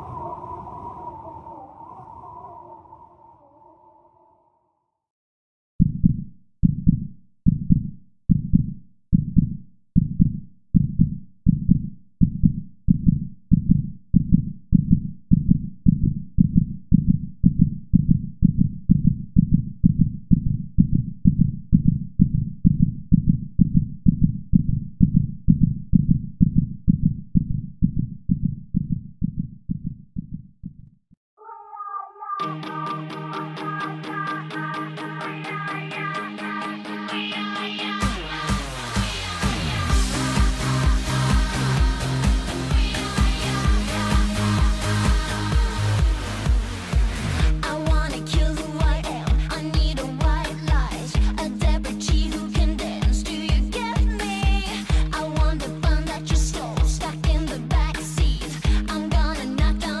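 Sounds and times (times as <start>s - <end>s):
heartbeat thumps: 5.8s - 31.0s, 39.4s - 59.9s.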